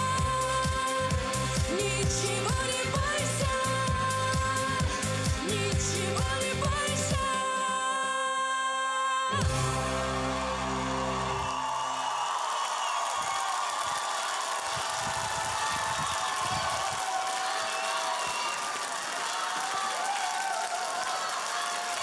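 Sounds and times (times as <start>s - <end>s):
song final chord: 9.3s - 11.5s
audience cheering and applauding: 9.4s - 22.0s.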